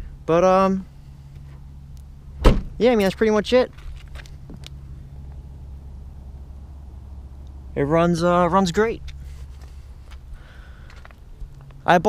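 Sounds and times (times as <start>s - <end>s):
car engine idling: 0.0s - 11.9s.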